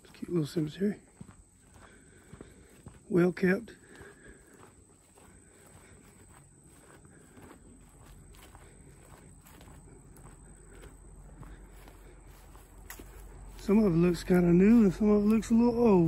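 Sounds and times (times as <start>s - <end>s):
footsteps on grass: 0.0s - 16.0s.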